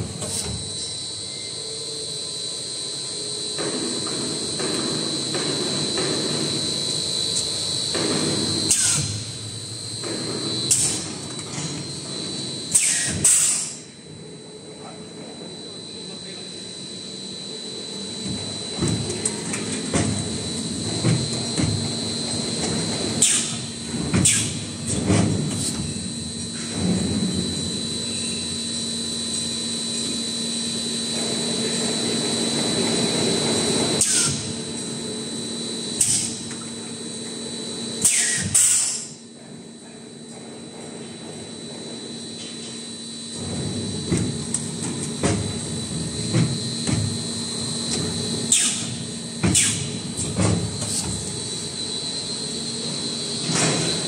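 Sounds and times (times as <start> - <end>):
machine hum with high whine: 0.0 - 54.0.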